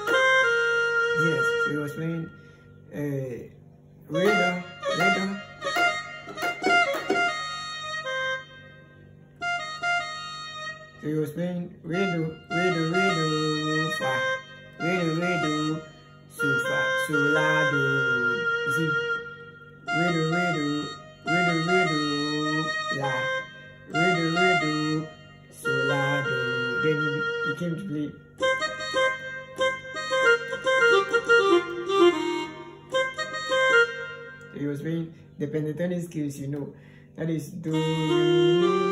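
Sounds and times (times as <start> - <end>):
electronic keyboard notes: 0.0 - 3.3, 3.9 - 36.7, 37.4 - 38.9
keyboard chords: 0.0 - 38.9.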